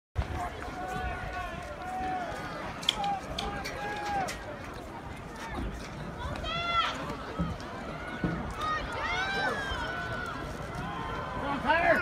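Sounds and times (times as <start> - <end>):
low crowd hubbub: 0.2 - 12.0.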